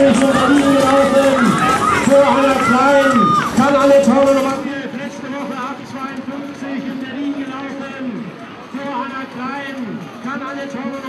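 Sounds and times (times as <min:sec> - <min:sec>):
crowd noise: 0:00.0 - 0:11.0
people speaking: 0:00.0 - 0:11.0.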